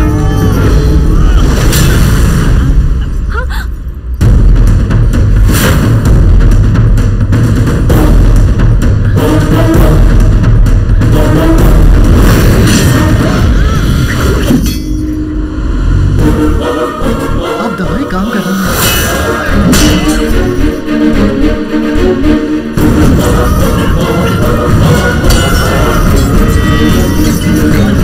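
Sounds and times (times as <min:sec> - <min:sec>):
dramatic music score: 0:00.0 - 0:28.0
booming hits and crashing impacts: 0:01.0 - 0:03.2, 0:04.2 - 0:15.5.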